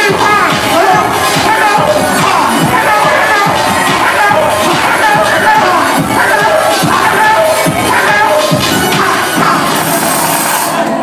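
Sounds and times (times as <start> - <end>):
crowd: 0.0 - 11.0
loud live music: 0.0 - 11.0.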